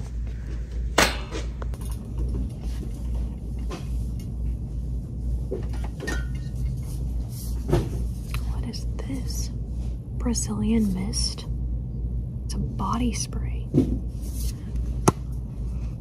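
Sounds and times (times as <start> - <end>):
low rumble: 0.0 - 16.0.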